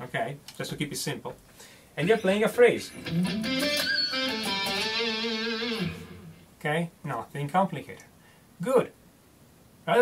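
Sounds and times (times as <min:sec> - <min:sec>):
electric guitar lead phrase: 0:02.9 - 0:06.5.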